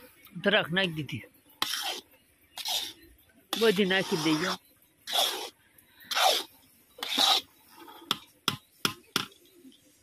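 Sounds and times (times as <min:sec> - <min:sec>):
metal spatula scraping iron pan: 0:06.1 - 0:08.1.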